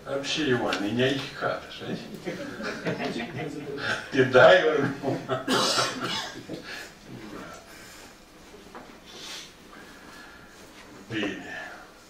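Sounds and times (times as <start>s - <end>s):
person coughing: 5.5s - 6.7s.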